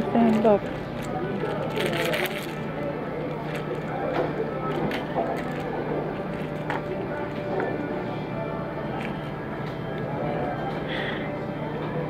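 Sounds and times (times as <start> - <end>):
diners chattering: 0.0 - 12.0
steady low hum: 0.0 - 12.0.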